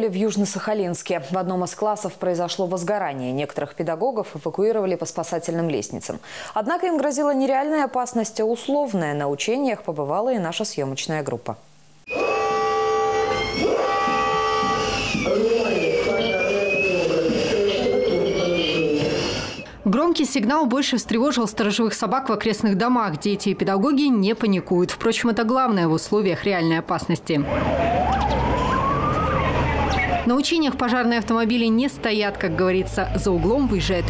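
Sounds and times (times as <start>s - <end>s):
fire alarm siren wailing: 12.1s - 19.7s, 27.4s - 30.3s.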